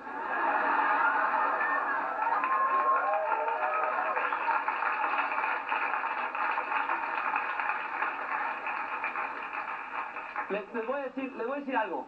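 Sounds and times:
audience applauding: 0:00.4 - 0:11.5.

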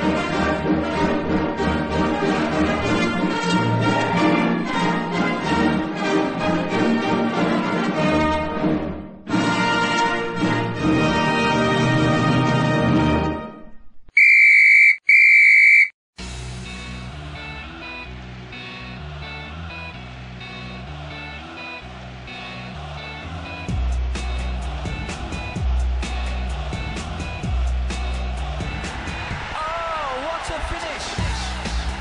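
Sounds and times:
referee's whistle blasts: 0:14.2 - 0:15.9
background music with steady beat: 0:16.2 - 0:29.5, 0:31.0 - 0:32.0.

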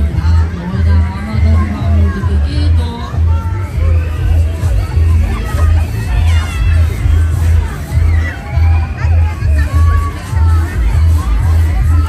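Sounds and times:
crowd voices: 0:00.0 - 0:12.0
loud music with pulsing bass: 0:00.0 - 0:12.0.

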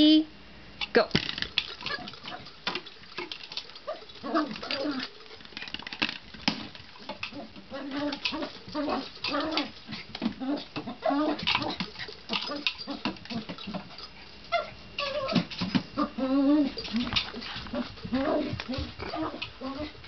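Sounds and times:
dog whining and grumbling: 0:03.8 - 0:05.2, 0:07.2 - 0:20.0.

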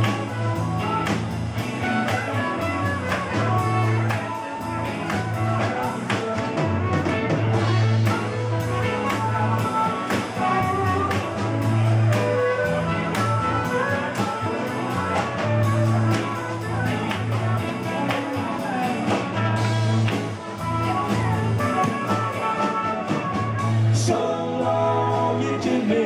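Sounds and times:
trumpet solo: 0:00.0 - 0:24.1
bass line: 0:00.0 - 0:26.0.

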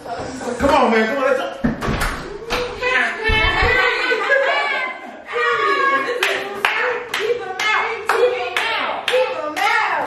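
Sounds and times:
voices: 0:02.4 - 0:10.0
hands clapping in rhythm: 0:06.2 - 0:10.0.

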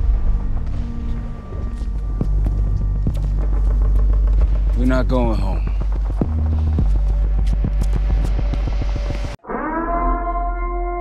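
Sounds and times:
heavy bass rumble: 0:00.0 - 0:09.4
emergency siren tone: 0:09.4 - 0:11.0.

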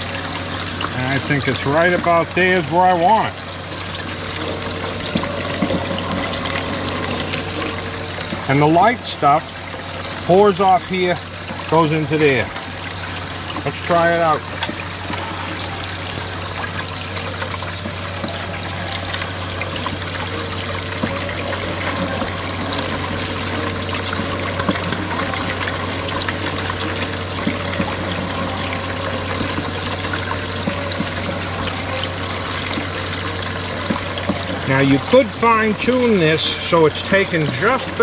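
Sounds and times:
steady low hum: 0:00.0 - 0:38.0
water pouring into tub: 0:00.0 - 0:38.0
water splashing over spinning wheel: 0:00.0 - 0:38.0.

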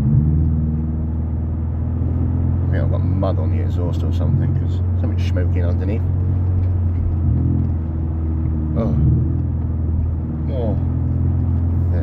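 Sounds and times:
car engine drone inside cabin: 0:00.0 - 0:12.0.

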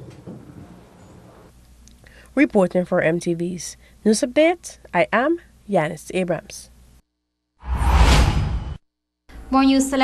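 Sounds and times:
deep whoosh: 0:07.6 - 0:08.8.

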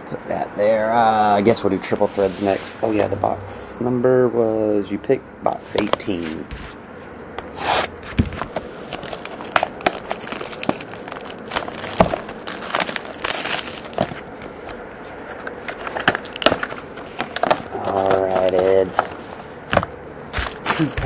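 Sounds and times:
cardboard box opening: 0:07.4 - 0:19.2
plastic wrap tearing and crinkling: 0:07.6 - 0:21.0.

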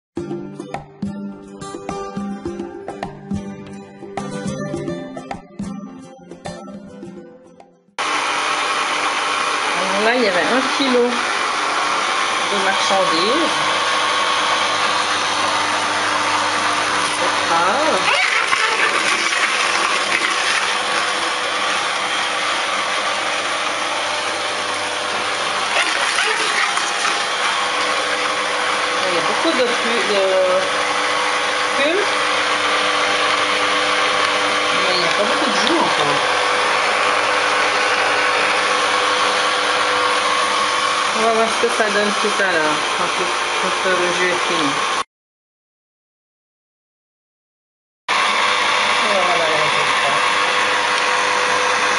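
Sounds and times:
juicer motor humming: 0:08.0 - 0:45.0, 0:48.1 - 0:51.9
person speaking: 0:12.4 - 0:13.7, 0:17.1 - 0:19.6, 0:28.9 - 0:30.7, 0:34.7 - 0:36.3.

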